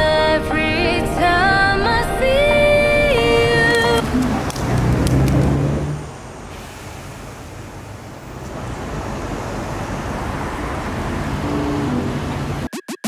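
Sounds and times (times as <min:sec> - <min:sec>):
road traffic hum: 0:00.5 - 0:12.7.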